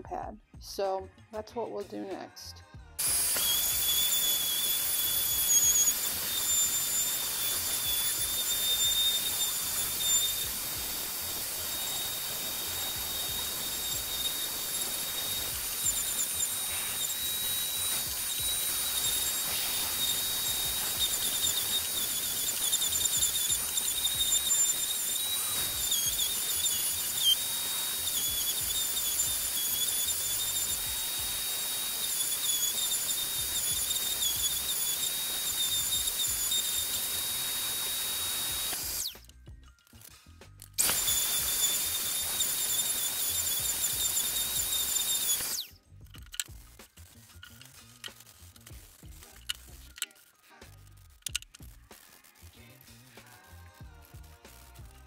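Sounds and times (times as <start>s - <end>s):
orbital sander whining: 3.0s - 39.3s, 40.8s - 45.7s.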